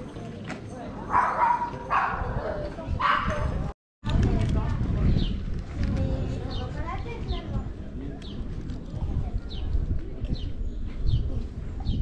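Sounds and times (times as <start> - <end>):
dog barking: 1.1 - 2.4, 3.0 - 3.5.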